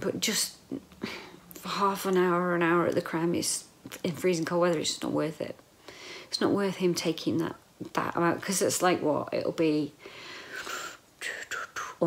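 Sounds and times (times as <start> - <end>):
woman breathing breathily: 1.0 - 1.4, 5.8 - 6.3, 10.0 - 11.0.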